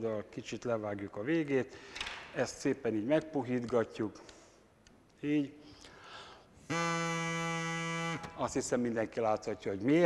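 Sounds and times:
straw reed horn steady note: 6.7 - 8.4.

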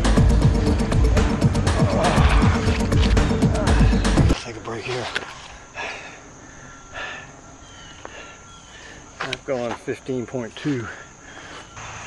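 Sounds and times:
soft puffs of breath: 11.2 - 11.8.

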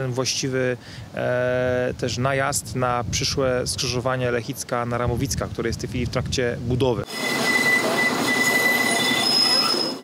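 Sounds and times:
tram running noise: 7.0 - 10.0
tram wheels squealing: 7.0 - 10.0.

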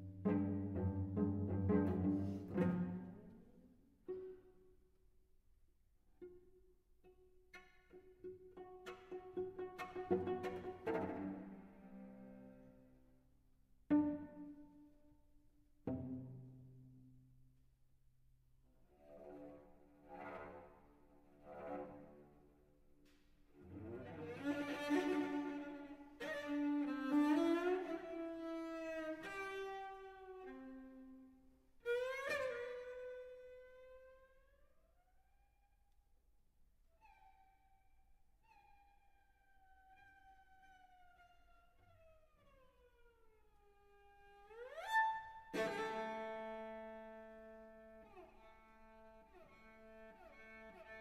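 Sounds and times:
solo cello playing softly: 0.0 - 5.0, 6.2 - 15.0, 15.8 - 17.2, 18.9 - 22.7, 23.6 - 34.6, 39.9 - 51.0.

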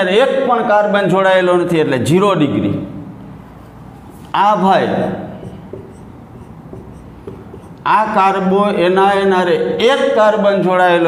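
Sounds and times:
marker scratching on whiteboard: 5.2 - 8.2.

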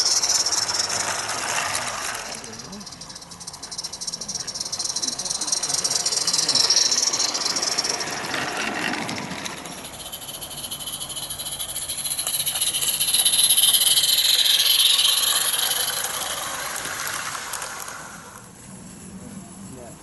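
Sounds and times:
steam locomotive exhaust hissing: 0.0 - 18.5.

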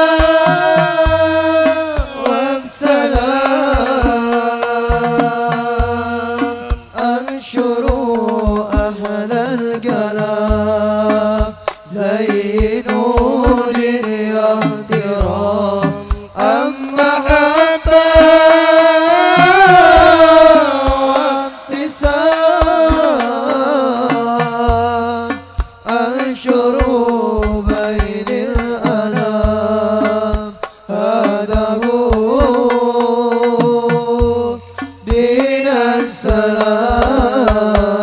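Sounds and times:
frame drums: 0.0 - 38.0
men singing devotional song: 0.0 - 38.0.

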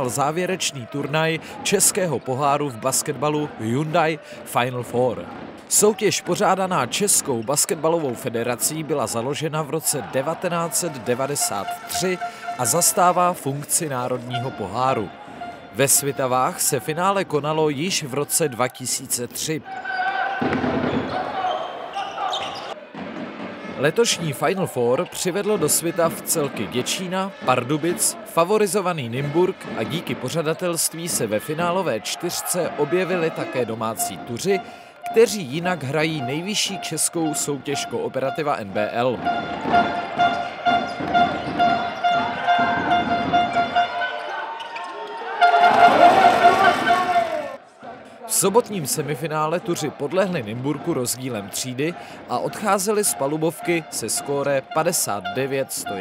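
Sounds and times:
crowd noise and voices: 0.0 - 56.0
horn tooting: 10.2 - 16.3, 33.4 - 47.6, 53.0 - 56.0
basketball bouncing on court: 39.2 - 44.0.

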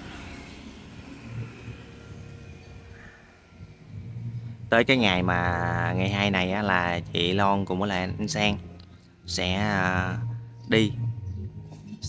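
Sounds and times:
motor scooter passing by: 0.0 - 5.2.

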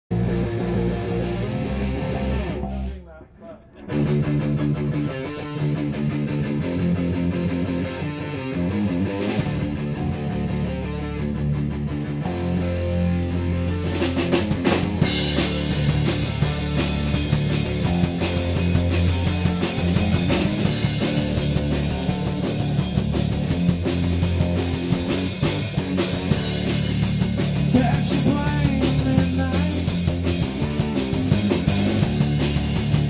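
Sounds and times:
rock band playing: 0.1 - 33.0.

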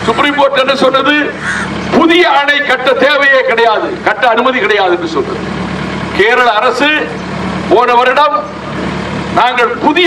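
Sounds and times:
man speaking into microphone: 0.0 - 5.5, 6.1 - 8.6, 9.3 - 10.0
steady low hum: 0.0 - 10.0.

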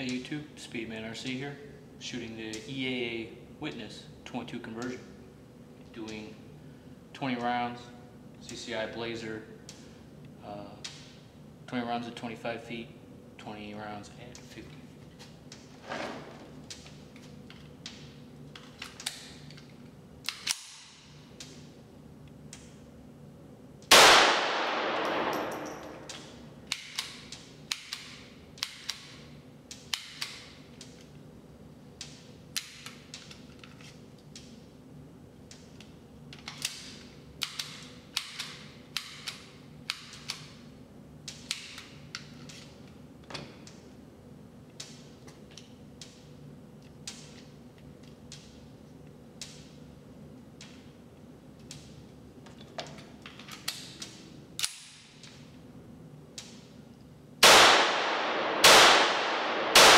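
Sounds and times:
steady hum: 0.0 - 59.9
loud gunshot with long echo: 23.9 - 25.6, 57.4 - 59.9
pistol gunshots ringing indoors: 23.9 - 29.1, 57.4 - 59.9.

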